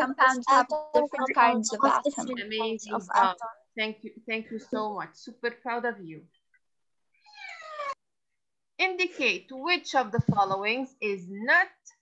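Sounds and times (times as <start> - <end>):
cat meowing: 7.2 - 8.0.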